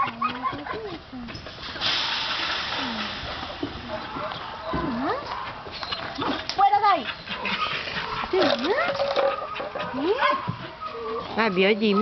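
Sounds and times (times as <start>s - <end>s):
dog whining: 8.7s - 12.0s.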